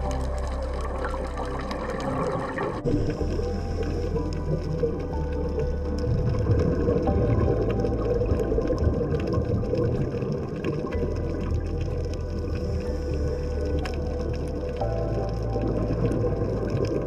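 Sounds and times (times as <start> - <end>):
ambient music with bass notes: 0.0 - 17.0
faint crackle of clicks: 0.0 - 17.0.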